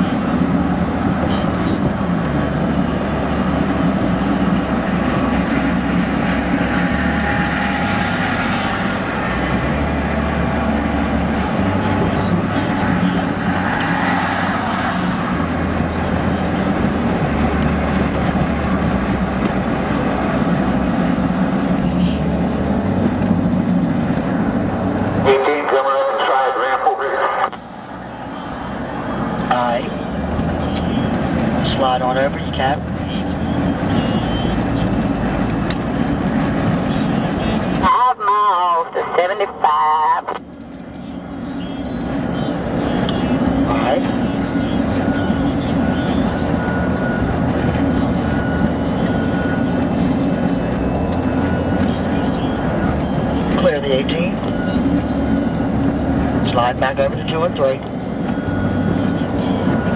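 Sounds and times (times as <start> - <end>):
vehicle engine and road noise: 0.0 - 59.9.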